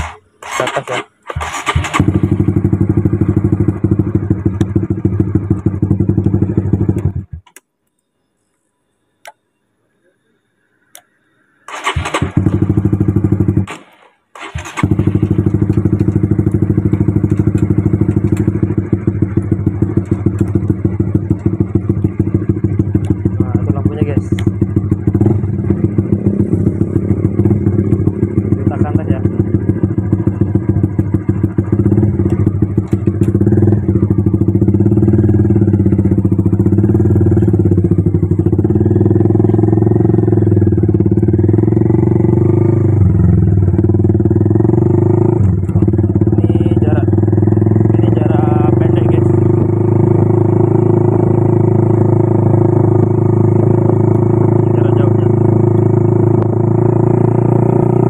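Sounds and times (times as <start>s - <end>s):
motorcycle engine riding: 0.0s - 7.6s, 11.7s - 58.0s.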